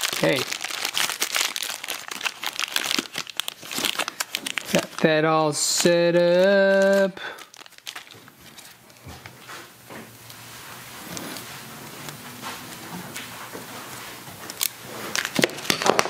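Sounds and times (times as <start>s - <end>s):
plastic crinkles: 0.0s - 9.5s, 10.2s - 16.0s
plastic wrapping rustling: 0.0s - 16.0s.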